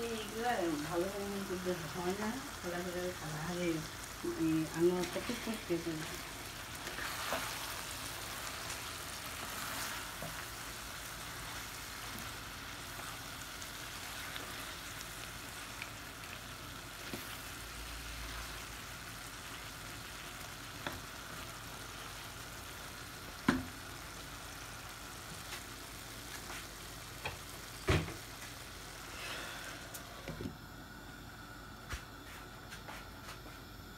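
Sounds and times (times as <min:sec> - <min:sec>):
curry sizzling in a frying pan: 0:00.0 - 0:29.6.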